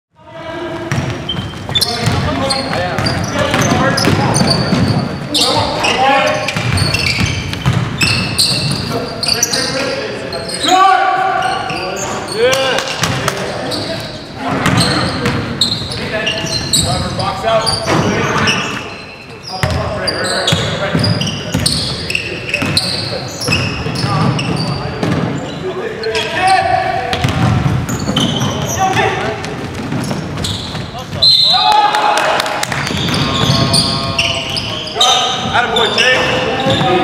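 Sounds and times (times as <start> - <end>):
players' voices echoing: 0.1 - 37.0
basketball dribbling on wooden floor: 0.9 - 2.3.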